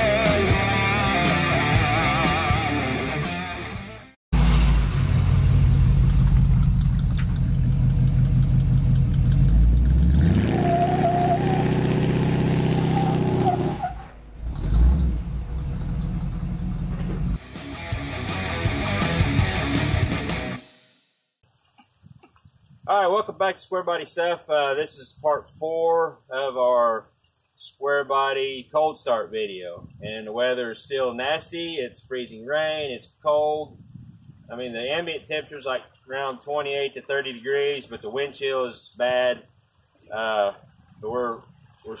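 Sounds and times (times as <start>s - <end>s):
heavy metal guitar music: 0.0s - 5.1s, 17.4s - 20.6s
pickup engine running and revving: 4.4s - 20.1s.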